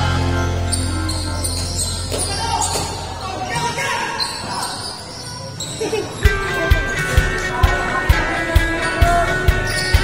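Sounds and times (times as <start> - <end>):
voices calling out: 0.0 - 10.0.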